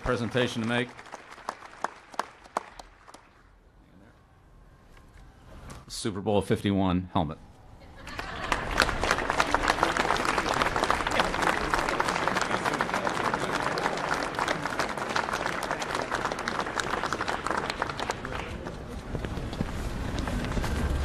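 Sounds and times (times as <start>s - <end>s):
audience applauding: 0.0s - 3.4s, 8.0s - 21.0s.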